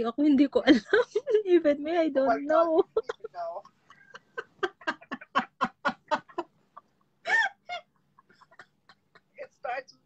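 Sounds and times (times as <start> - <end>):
woman laughing hard: 2.9 - 9.3.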